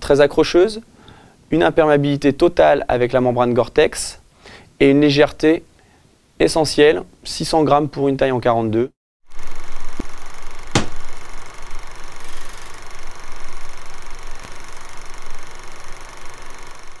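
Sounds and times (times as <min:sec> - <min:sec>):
sharp impact: 0:10.7 - 0:11.1
faint hit: 0:10.8 - 0:11.0.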